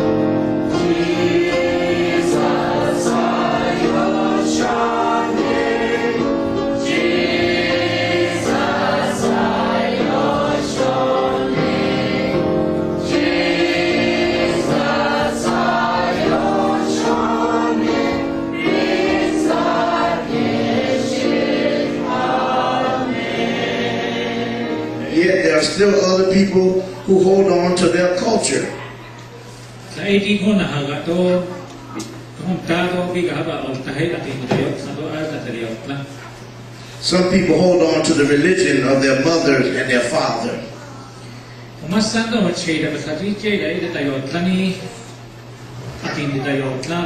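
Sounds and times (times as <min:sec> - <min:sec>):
choir singing a hymn: 0:00.0 - 0:28.6.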